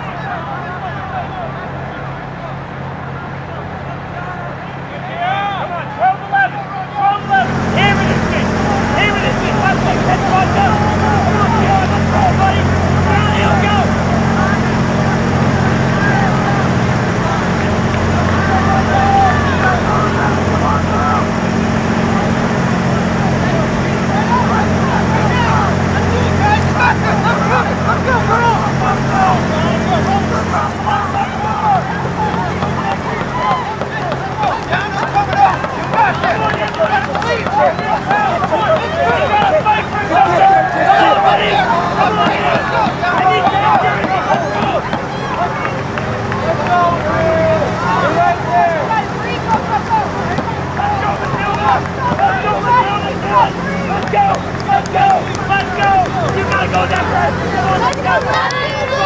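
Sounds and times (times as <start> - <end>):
spectators shouting and cheering: 0.0 - 59.0
steady low hum: 0.0 - 59.0.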